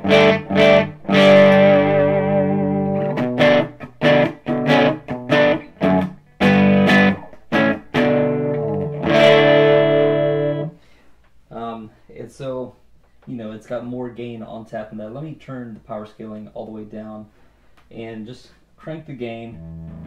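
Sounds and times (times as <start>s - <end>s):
electric guitar chords: 0.0s - 10.8s, 19.5s - 20.0s.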